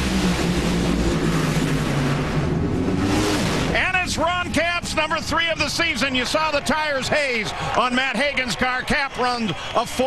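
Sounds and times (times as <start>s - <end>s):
drag racer engines roaring: 0.0s - 10.0s.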